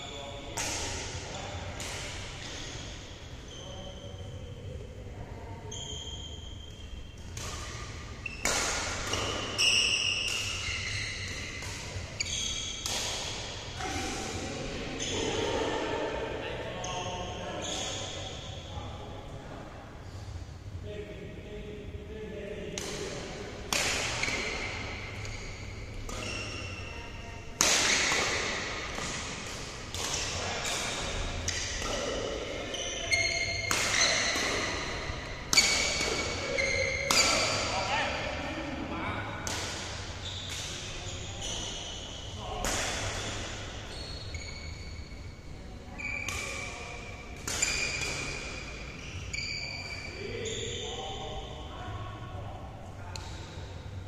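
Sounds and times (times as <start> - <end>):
shoes squeaking on court floor: 5.7 - 13.5, 24.1 - 29.2, 32.5 - 37.7, 40.2 - 42.4, 43.3 - 51.5
voices: 7.3 - 19.8
racket striking shuttlecock: 12.7 - 13.5, 22.8 - 26.8, 27.6 - 32.1, 33.2 - 37.6.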